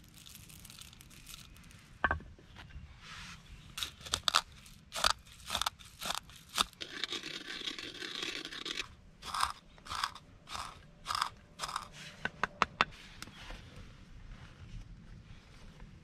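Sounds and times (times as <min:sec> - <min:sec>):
coffee beans crushed with pestle: 0:00.0 - 0:01.8, 0:03.8 - 0:11.9.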